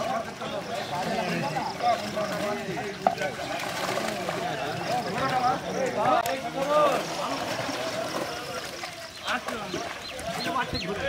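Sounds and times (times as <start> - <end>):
men talking: 0.0 - 11.0
water splashing: 0.0 - 11.0.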